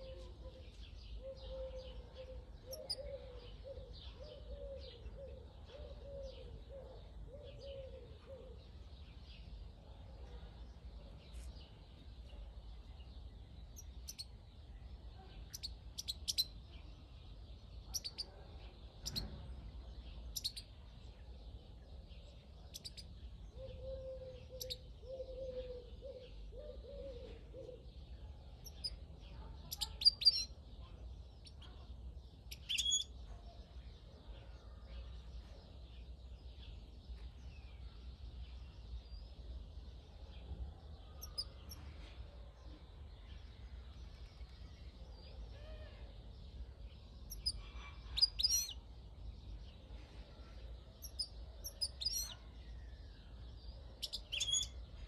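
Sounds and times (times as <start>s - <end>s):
faint twitter of birds: 0.0s - 55.0s
dove cooing: 1.2s - 8.6s, 23.6s - 27.9s
goldfinch chirps: 15.5s - 16.6s, 32.5s - 33.2s, 47.2s - 48.8s, 51.0s - 52.4s, 54.0s - 54.8s.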